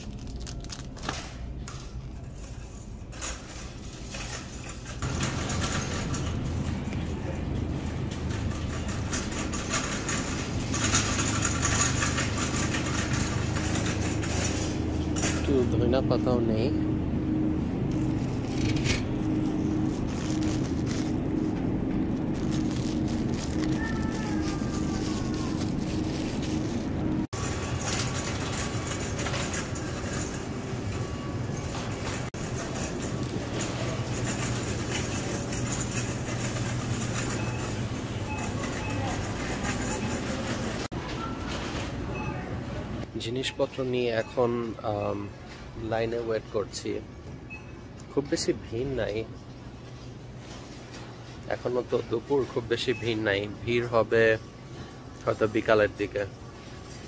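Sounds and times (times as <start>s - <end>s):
shopping cart rolling and rattling: 0.0s - 16.7s, 17.4s - 57.0s.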